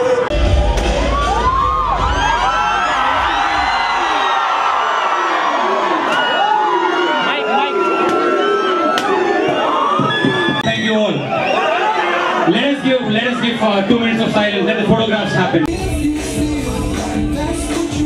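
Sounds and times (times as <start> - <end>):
crowd cheering and shouting: 0.0 - 18.0.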